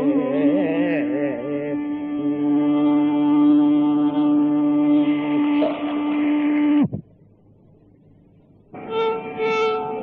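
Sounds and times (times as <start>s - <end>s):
long held sung note with accompaniment: 0.0s - 6.9s, 8.7s - 10.0s.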